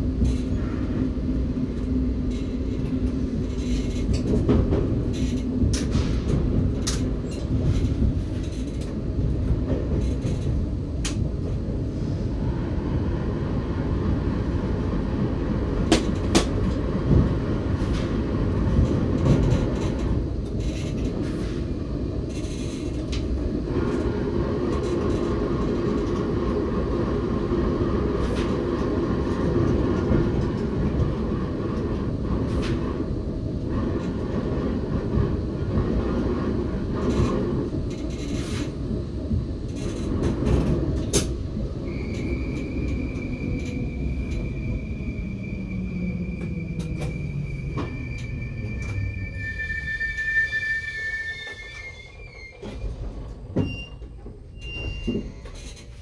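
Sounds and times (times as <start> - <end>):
train rumbling through tunnel: 0.0 - 56.0.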